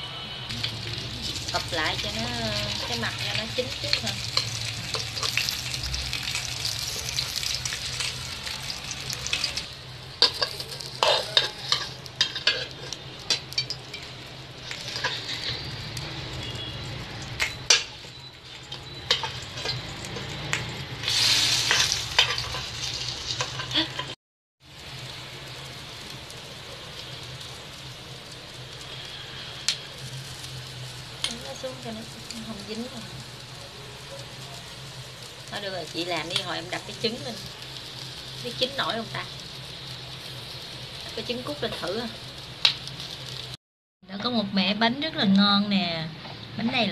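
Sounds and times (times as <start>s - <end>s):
batter sizzling in a pan: 0.5s - 43.6s
metal spoon scraping a pan: 3.9s - 15.8s, 18.5s - 20.4s, 21.0s - 24.2s.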